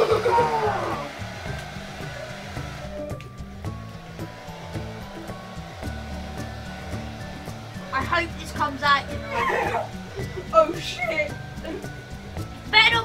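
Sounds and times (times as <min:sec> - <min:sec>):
hair dryer blowing: 0:00.0 - 0:12.7
background music with bass line: 0:00.0 - 0:13.0.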